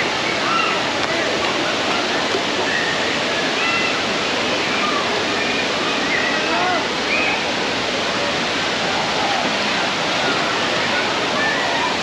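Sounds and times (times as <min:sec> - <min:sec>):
flowing churning water: 0:00.0 - 0:12.0.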